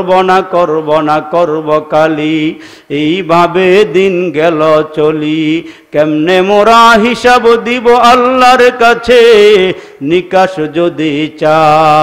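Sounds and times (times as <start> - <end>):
man chanting into a microphone: 0.0 - 12.0.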